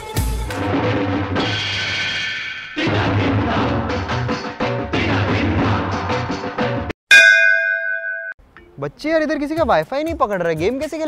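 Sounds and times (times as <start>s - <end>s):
metallic bell ding: 7.1s - 8.4s.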